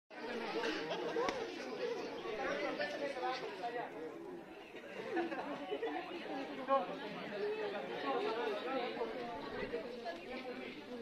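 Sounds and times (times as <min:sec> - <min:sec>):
chatter of many people: 0:00.1 - 0:11.0.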